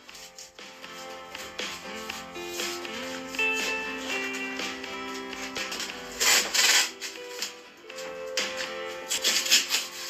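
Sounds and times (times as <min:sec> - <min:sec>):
background music sustained tones: 0:00.0 - 0:10.0.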